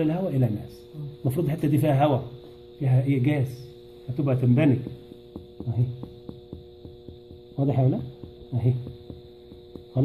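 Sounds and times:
light finger taps on chest: 0:04.7 - 0:10.0.

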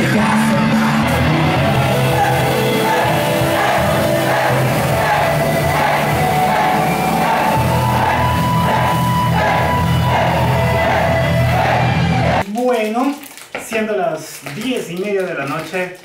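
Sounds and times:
crowd voices: 0:00.1 - 0:12.4.

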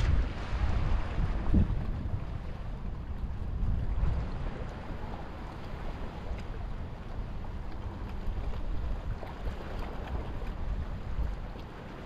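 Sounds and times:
wind buffeting microphone: 0:00.0 - 0:11.6
faint sea waves: 0:00.0 - 0:12.0.

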